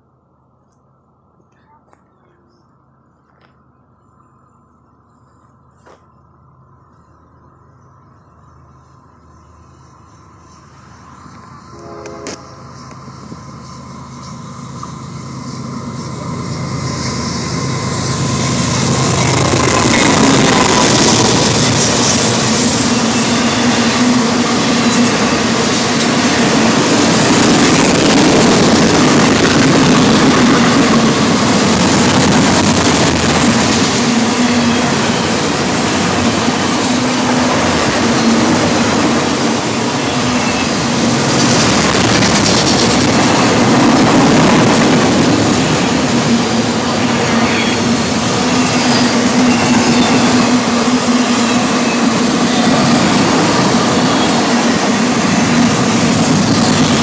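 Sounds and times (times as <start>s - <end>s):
freight train wheels clattering on rails: 12.2s - 57.0s.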